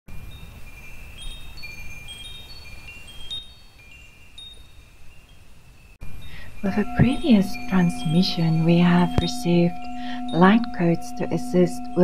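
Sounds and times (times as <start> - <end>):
chimes ringing: 0.1 - 12.0.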